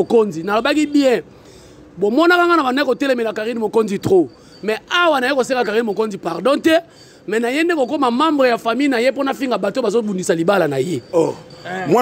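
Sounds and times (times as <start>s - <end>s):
man talking: 0.0s - 1.3s, 2.0s - 12.0s.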